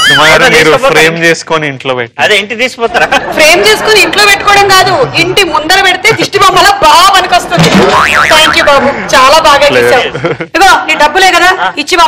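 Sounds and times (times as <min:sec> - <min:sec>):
cartoon boing: 0:07.6 - 0:08.7.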